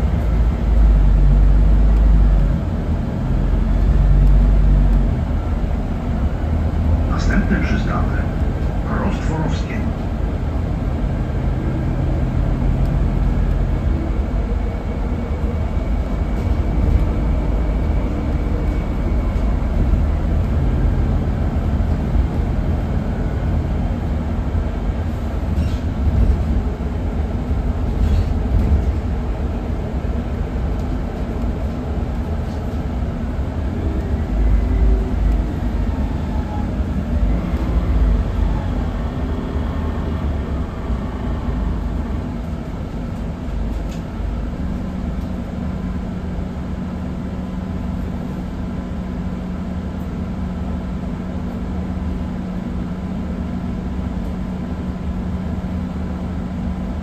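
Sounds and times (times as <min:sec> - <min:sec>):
bus engine and road rumble: 0:00.0 - 0:57.0.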